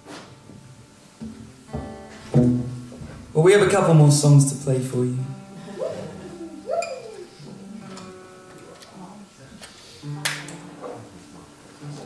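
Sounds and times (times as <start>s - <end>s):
guitar notes ringing: 0.0s - 12.0s.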